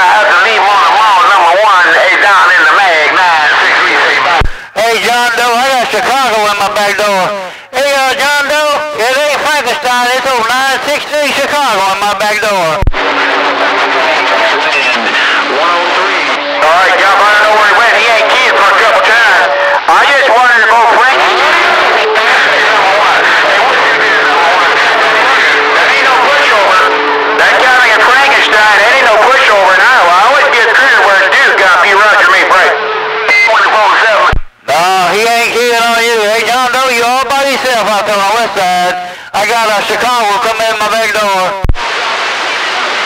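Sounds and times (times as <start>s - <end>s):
steady radio tones: 0.0s - 8.5s, 9.2s - 43.0s
garbled radio voices: 0.0s - 43.0s.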